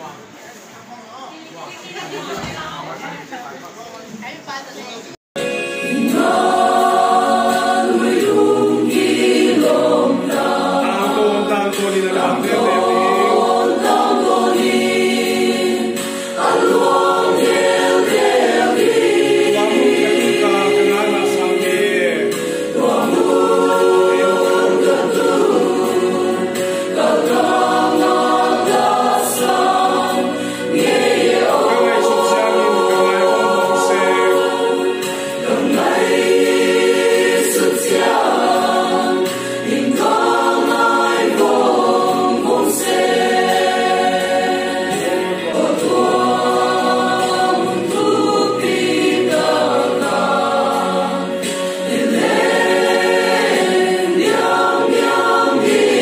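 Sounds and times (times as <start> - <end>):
choir singing gospel: 5.4 - 56.0.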